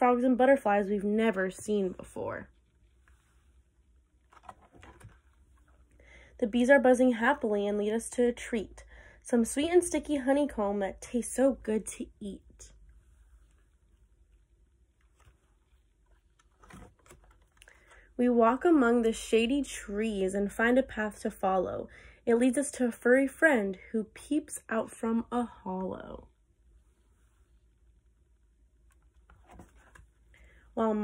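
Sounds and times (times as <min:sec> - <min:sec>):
book page turning: 0:02.9 - 0:05.9, 0:15.0 - 0:18.0, 0:28.8 - 0:30.3.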